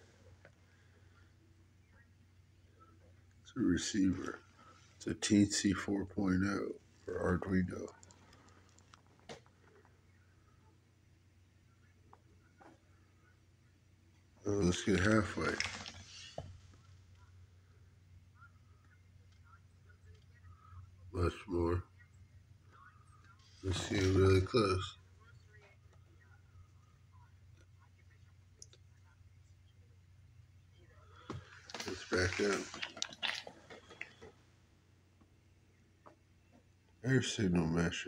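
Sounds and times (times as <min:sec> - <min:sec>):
steady low hum: 0:00.0 - 0:38.0
soft rustling: 0:14.2 - 0:17.3, 0:31.0 - 0:34.6.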